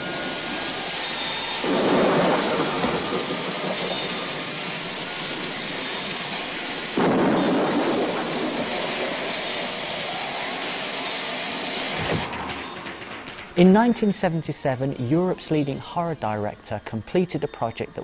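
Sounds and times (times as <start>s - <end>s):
thunder rumbling: 0.0s - 14.5s
heavy rain falling: 0.0s - 15.8s.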